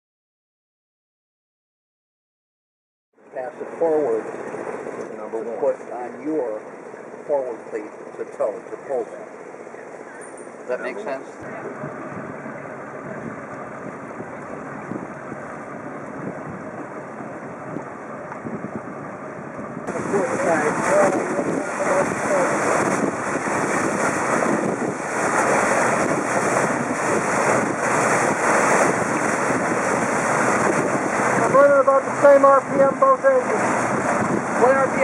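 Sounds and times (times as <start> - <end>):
motorboat engine: 3.2 - 35.0
rushing water: 3.2 - 35.0
wind buffeting microphone: 11.4 - 35.0.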